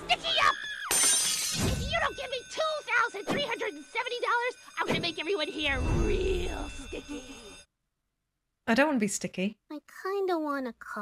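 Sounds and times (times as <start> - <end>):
glass shattering: 0.9 - 2.1.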